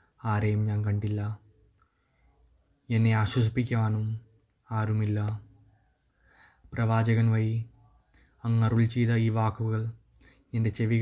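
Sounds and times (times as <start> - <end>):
man reciting prayers: 2.9 - 5.6, 6.7 - 11.0.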